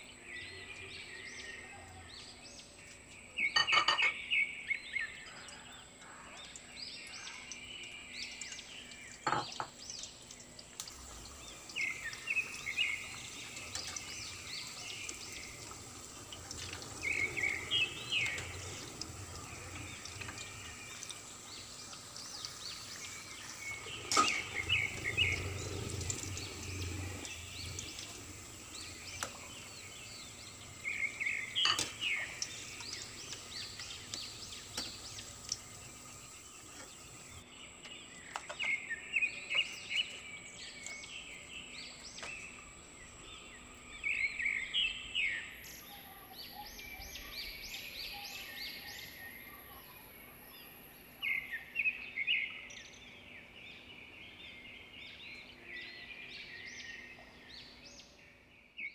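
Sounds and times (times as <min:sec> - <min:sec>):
birds chirping: 0:00.0 - 0:58.9.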